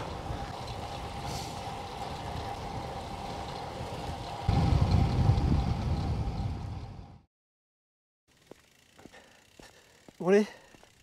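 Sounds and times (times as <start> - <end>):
low wind buffeting on microphone: 0.0 - 7.2
wind on microphone while cycling: 0.0 - 7.3.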